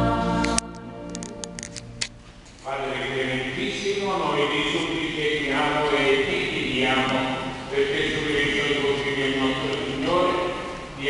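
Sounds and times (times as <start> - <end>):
priest chanting: 2.6 - 11.0.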